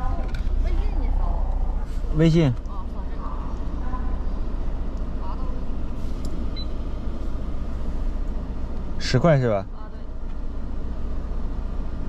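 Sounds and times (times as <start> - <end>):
pickup truck engine idling: 0.0 - 12.0.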